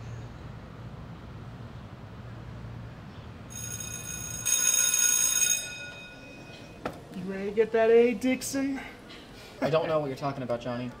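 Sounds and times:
electric school bell ringing: 3.5s - 7.8s
low background hum: 5.6s - 11.0s.

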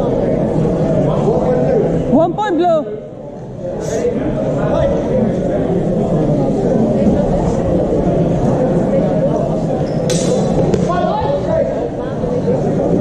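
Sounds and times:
murmur of voices in a hall: 0.0s - 13.0s.

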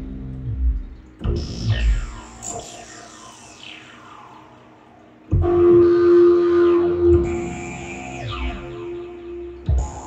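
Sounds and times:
steady synthesizer tone: 0.0s - 10.0s
synthesizer notes with falling sweeps: 0.0s - 10.0s.

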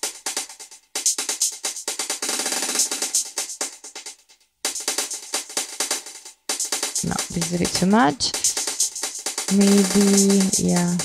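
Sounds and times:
electronic hi-hat with delay echoes: 0.0s - 11.0s.

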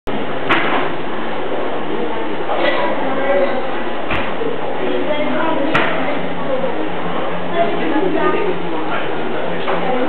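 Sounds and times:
diners chattering: 0.1s - 10.0s.

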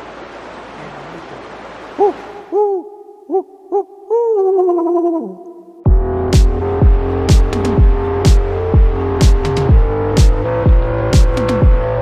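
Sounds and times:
rushing water hiss: 0.0s - 2.6s
owl-like hooting: 2.0s - 5.9s.

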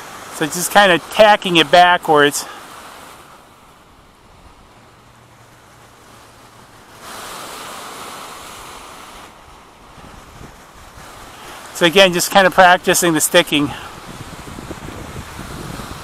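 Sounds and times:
lake surf washing on beach: 0.0s - 16.0s
wind on microphone: 9.9s - 11.4s, 13.8s - 16.0s.

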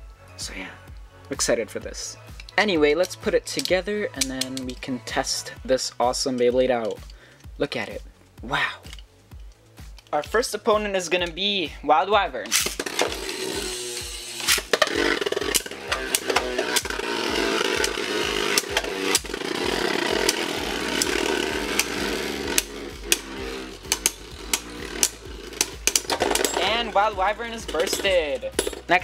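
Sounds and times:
spinning top bursting apart: 12.5s - 29.0s
spinning tops clacking together: 12.5s - 29.0s
spinning tops whirring: 12.5s - 29.0s.

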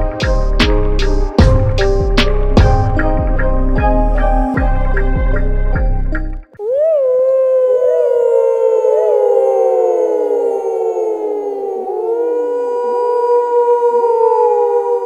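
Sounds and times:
wolves howling: 6.6s - 15.0s.

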